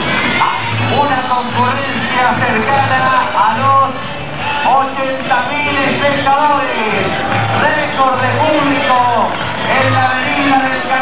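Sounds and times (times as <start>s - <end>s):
parade music: 0.0s - 11.0s
voices: 0.0s - 11.0s.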